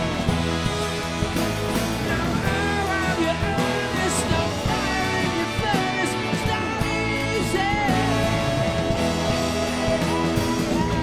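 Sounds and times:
drum kit beat: 0:00.0 - 0:11.0
rock band playing live: 0:00.0 - 0:11.0.

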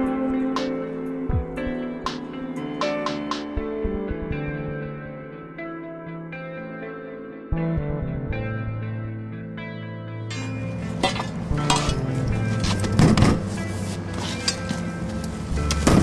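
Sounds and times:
background music: 0:00.0 - 0:16.0
metal tools clanking on door: 0:10.3 - 0:13.5, 0:14.2 - 0:14.8.

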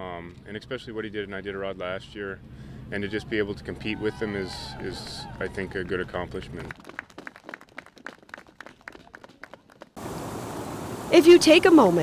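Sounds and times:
faint scattered clapping: 0:06.6 - 0:10.0
river water rushing over rocks: 0:10.0 - 0:12.0.

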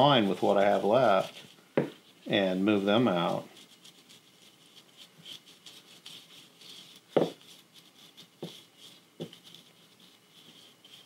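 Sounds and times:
paintbrush strokes on wood: 0:00.0 - 0:11.0.

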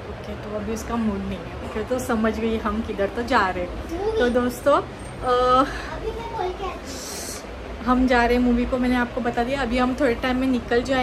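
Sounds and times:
child's high-pitched voice: 0:03.9 - 0:04.4, 0:05.7 - 0:07.4.

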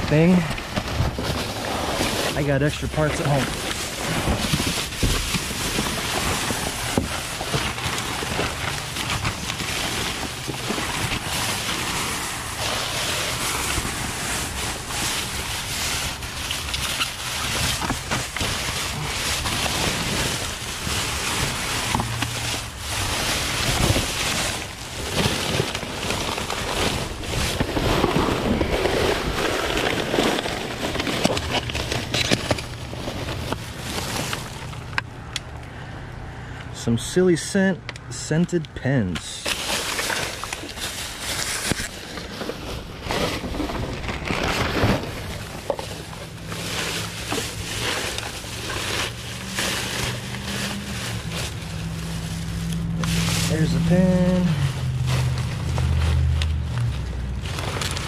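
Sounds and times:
trash bags and paper rustling: 0:00.0 - 0:35.6, 0:39.0 - 0:58.0.

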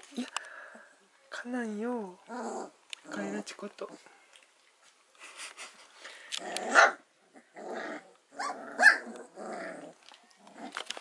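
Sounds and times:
puppies play-growling and yipping: 0:02.3 - 0:03.5, 0:06.4 - 0:11.0.

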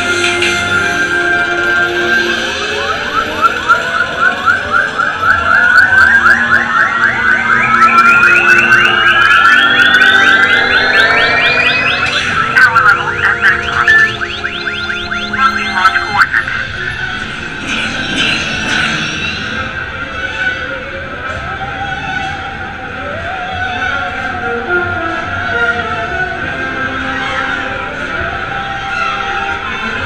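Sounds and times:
synth music: 0:00.0 - 0:17.7
pulsing electronic tone rising: 0:02.2 - 0:16.9.

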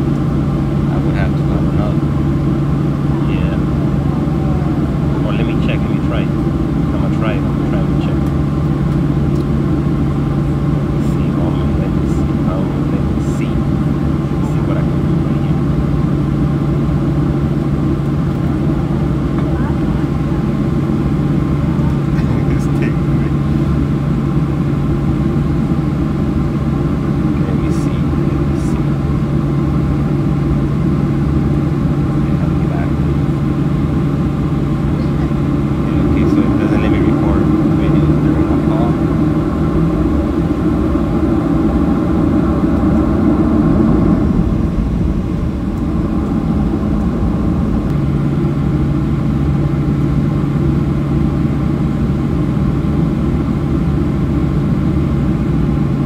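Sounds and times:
jet engines humming: 0:00.0 - 0:56.0.

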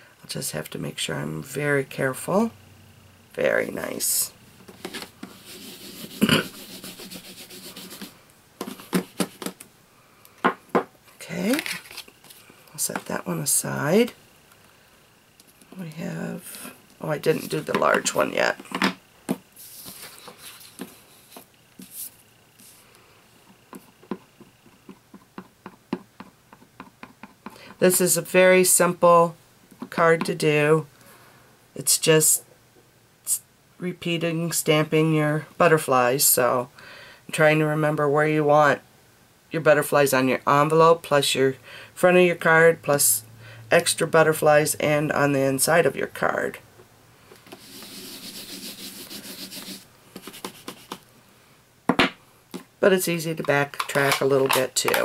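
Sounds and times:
dry rubbing: 0:04.8 - 0:09.6, 0:47.5 - 0:51.0.

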